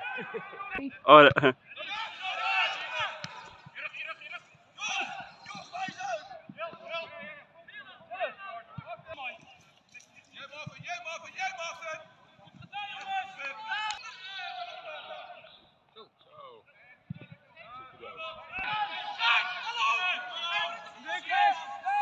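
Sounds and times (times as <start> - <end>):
men calling out: 0.0 - 3.6, 4.8 - 6.3, 18.0 - 22.0.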